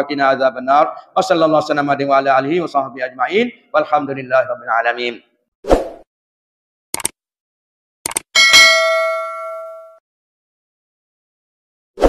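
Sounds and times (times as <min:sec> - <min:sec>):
bell ding: 0:08.4 - 0:10.0.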